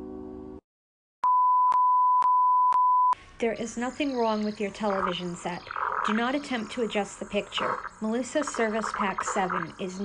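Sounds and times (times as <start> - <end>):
test tone beep: 1.2 - 3.2.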